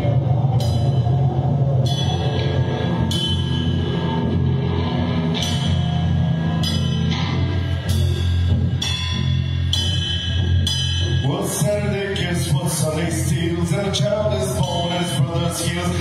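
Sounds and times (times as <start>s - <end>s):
cymbal crashes: 0.0s - 16.0s
deep bass: 0.0s - 16.0s
rock band playing: 0.0s - 16.0s.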